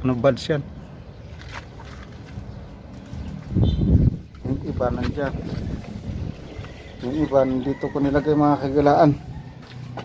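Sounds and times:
wind buffeting microphone: 0:02.4 - 0:09.4.

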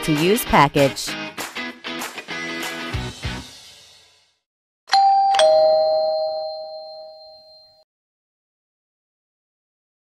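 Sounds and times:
two-note doorbell chime: 0:04.9 - 0:07.8.

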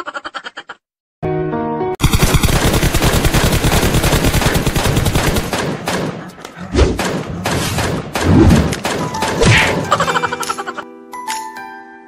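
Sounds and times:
rapid automatic gunfire: 0:02.0 - 0:09.0.

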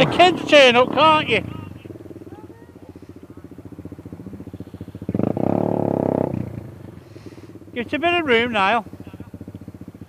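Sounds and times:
motorcycle engines idling: 0:00.0 - 0:10.0
motorcycle revving loudly: 0:00.0 - 0:10.0.

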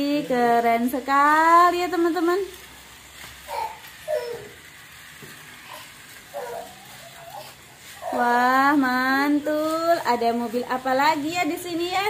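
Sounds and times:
toy cars whirring on track: 0:00.0 - 0:12.0.

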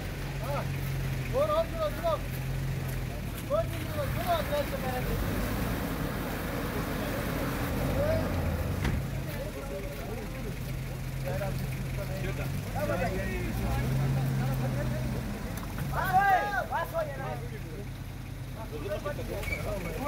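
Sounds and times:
vehicle engine humming: 0:00.0 - 0:20.0.

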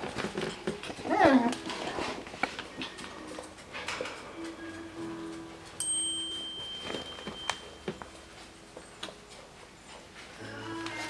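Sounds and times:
puppies scuffling: 0:00.0 - 0:11.0.

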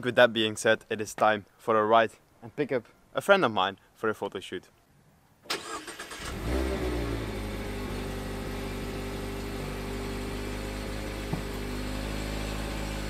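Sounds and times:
car engine revving and idling: 0:06.2 - 0:13.0.

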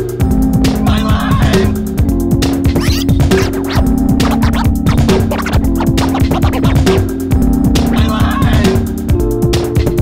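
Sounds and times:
fast drum pattern: 0:02.6 - 0:07.1
steady bass notes: 0:02.7 - 0:07.6
electronic dance music: 0:02.8 - 0:07.1.

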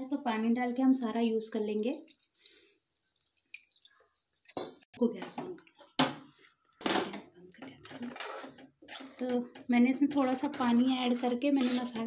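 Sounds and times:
water splashing into frying paste: 0:00.0 - 0:04.3.

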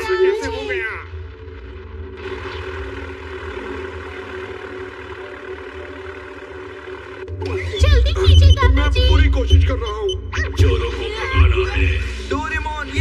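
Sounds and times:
engine-like drone: 0:00.0 - 0:13.0.

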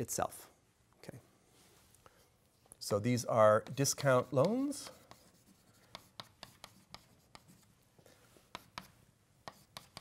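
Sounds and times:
chalk writing on blackboard: 0:02.5 - 0:10.0.

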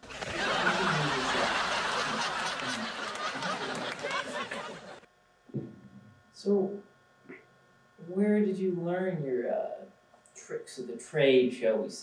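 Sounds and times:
audience laughing: 0:00.0 - 0:05.1.

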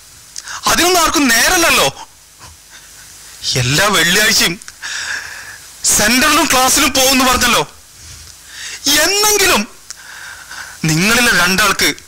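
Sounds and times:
man speaking loudly: 0:00.6 - 0:02.1, 0:03.4 - 0:04.6, 0:05.8 - 0:07.8, 0:08.8 - 0:09.8, 0:10.8 - 0:12.0.

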